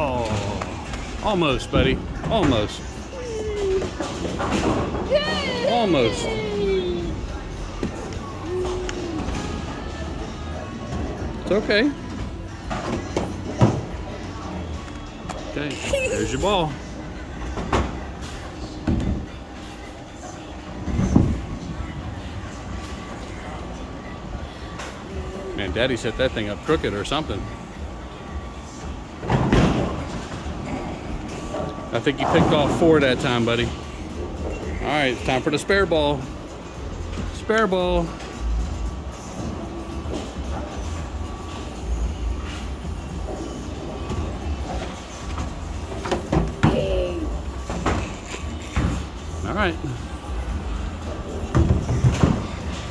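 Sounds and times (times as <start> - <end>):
background music: 0.0 - 52.9.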